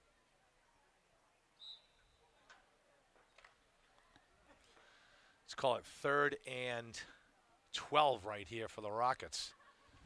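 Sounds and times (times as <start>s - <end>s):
faint high-pitched whistle tone: 1.5s - 2.4s.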